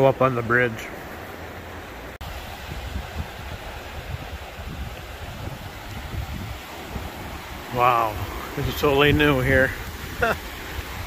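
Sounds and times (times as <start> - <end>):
water rushing over rapids: 0.0 - 11.0
wind gusting on microphone: 2.2 - 11.0.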